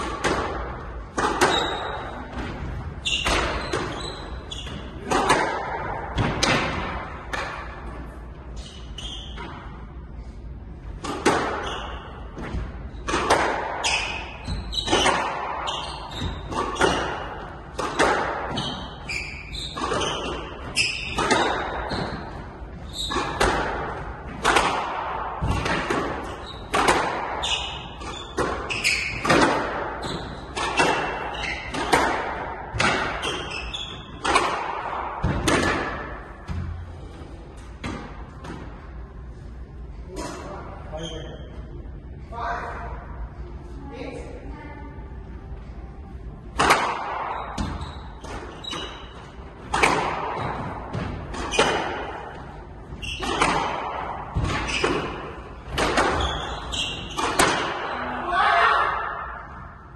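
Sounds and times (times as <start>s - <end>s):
squash ball struck by racquets: 0.0s - 8.6s, 10.8s - 39.0s, 46.4s - 59.9s.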